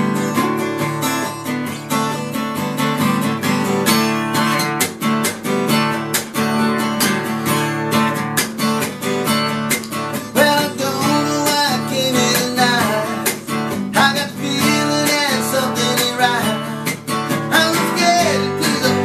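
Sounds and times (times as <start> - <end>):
acoustic guitar strummed: 0.0 - 19.0
man singing: 10.2 - 19.0.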